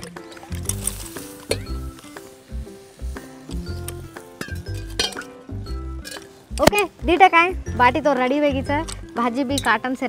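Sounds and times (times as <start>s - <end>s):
metal pots clinking: 0.0s - 2.3s, 3.3s - 6.9s, 8.8s - 9.8s
background music with steady beat: 0.0s - 10.0s.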